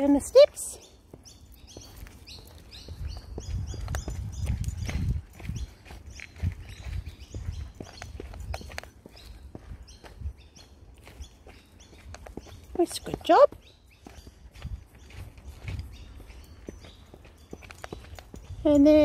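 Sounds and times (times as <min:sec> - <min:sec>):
footsteps and dog paws on steps: 0:00.0 - 0:19.0
high bird chirps: 0:00.7 - 0:19.0.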